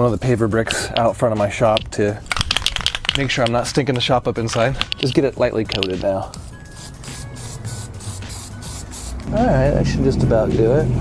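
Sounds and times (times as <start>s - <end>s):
aerosol can spraying: 4.4s - 9.4s.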